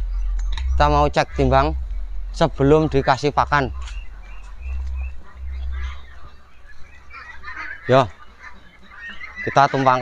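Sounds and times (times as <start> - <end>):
low rumble: 0.0 - 8.2
ducks quacking: 0.0 - 10.0.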